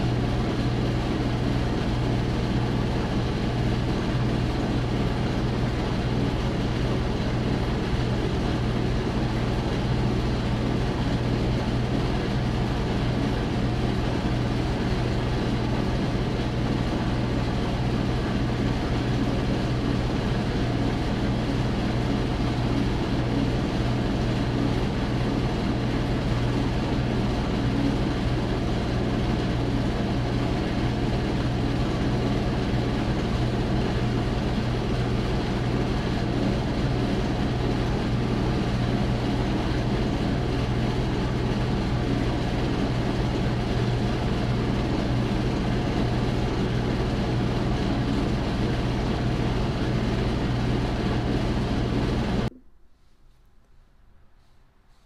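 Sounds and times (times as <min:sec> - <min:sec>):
duct fan air rushing: 0:00.0 - 0:52.6.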